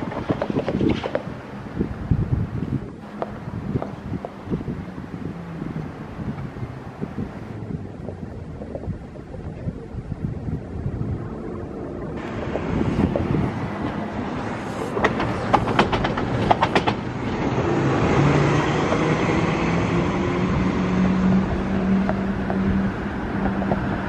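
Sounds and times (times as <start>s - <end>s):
train running on rails: 12.2s - 24.0s.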